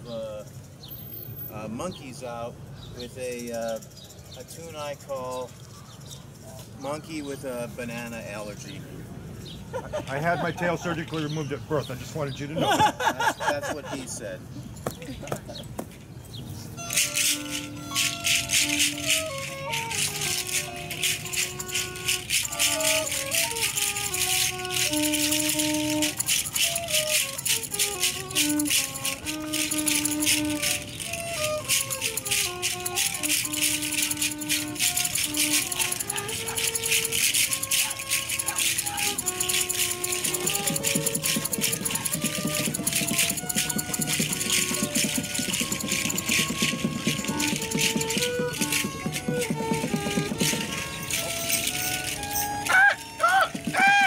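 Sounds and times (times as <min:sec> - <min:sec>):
melody of held notes: 0:16.4 - 0:54.0
hand rattles shaken: 0:16.8 - 0:54.0.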